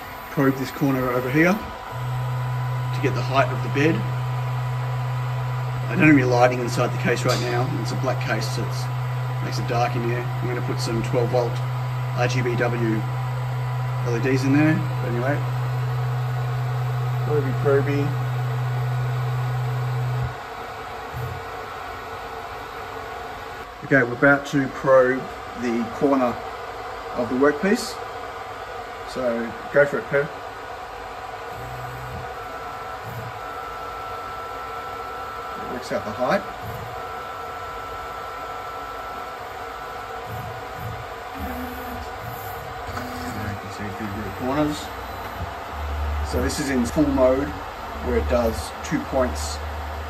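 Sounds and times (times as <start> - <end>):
stepper motor hum: 0.0 - 23.7, 30.5 - 50.0
steady high whine: 0.0 - 50.0.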